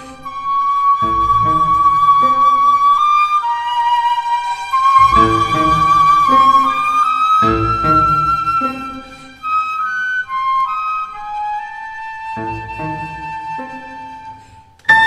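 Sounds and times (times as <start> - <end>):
flute melody: 0.0 - 15.0
string orchestra: 0.0 - 15.0
piano chords: 5.0 - 9.4.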